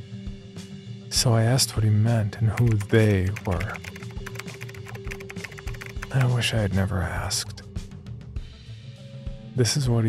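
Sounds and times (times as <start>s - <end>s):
keyboard key clicks: 2.6s - 6.4s.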